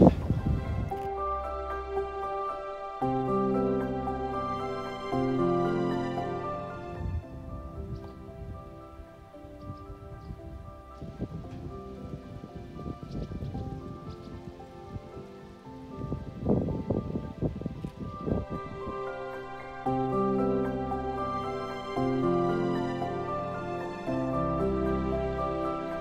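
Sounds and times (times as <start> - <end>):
wind buffeting microphone: 0.0 - 1.6, 6.1 - 26.0
quiet background music: 0.0 - 26.0.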